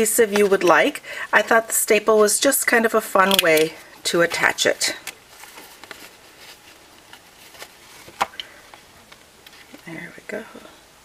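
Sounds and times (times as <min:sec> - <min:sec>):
faint rustles of cardstock: 0:05.3 - 0:10.1.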